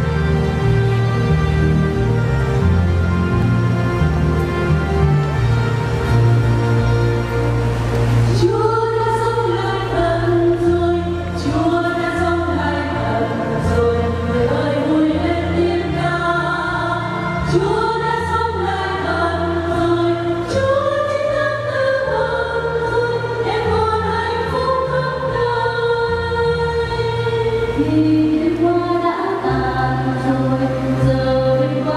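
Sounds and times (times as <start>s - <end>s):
held low accompaniment notes: 0.0s - 31.9s
church choir singing a hymn: 8.3s - 31.9s.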